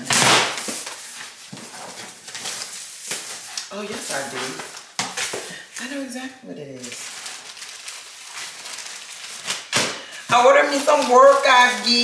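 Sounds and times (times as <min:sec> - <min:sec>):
packing tape ripping: 0:00.0 - 0:05.4, 0:06.8 - 0:12.0.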